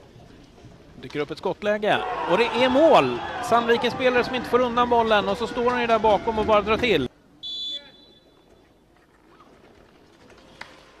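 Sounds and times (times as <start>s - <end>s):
faint open-air rink ambience: 0.0s - 11.0s
referee's whistle blowing: 7.4s - 8.4s.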